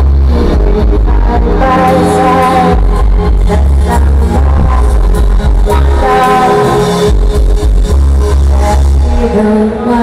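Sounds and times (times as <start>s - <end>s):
deep bass notes: 0.0s - 9.6s
electronic trip-hop band music: 0.0s - 10.0s.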